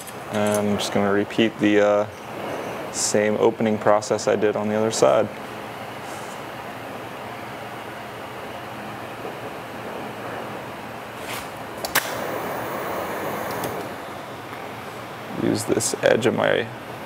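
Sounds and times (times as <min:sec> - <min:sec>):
torch flame hissing: 0:08.4 - 0:15.5
sharp click: 0:11.8 - 0:12.2.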